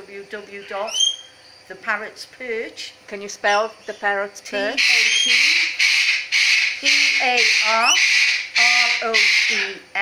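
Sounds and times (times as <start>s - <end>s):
lorikeets screeching: 0.3s - 1.8s, 2.9s - 10.0s
person's voice: 1.7s - 5.8s, 6.8s - 8.0s.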